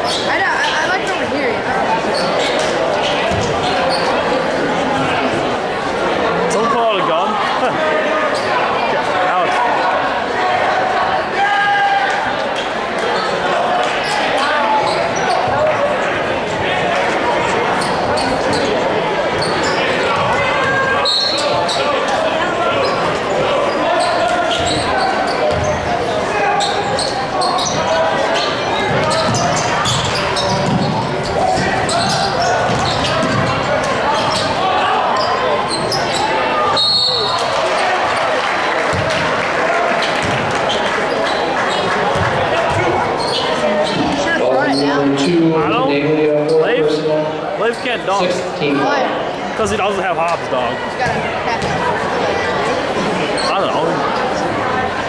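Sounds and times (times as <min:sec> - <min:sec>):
spectator chatter: 0:00.0 - 0:55.0.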